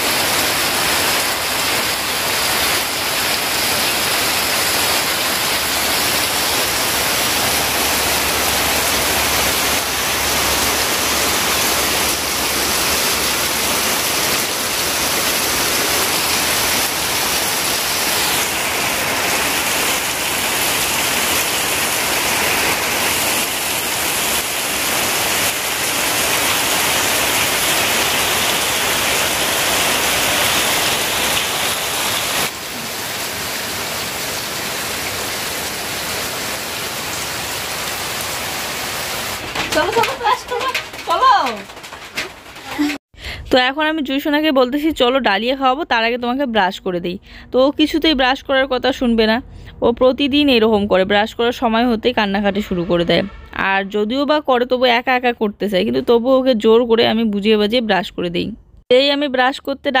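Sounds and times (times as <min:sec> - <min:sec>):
heavy rain pouring: 0:00.0 - 0:43.2.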